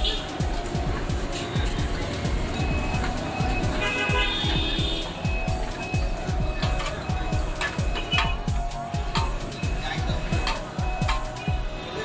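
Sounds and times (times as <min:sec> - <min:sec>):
music with deep bass drum beat: 0:00.0 - 0:12.0.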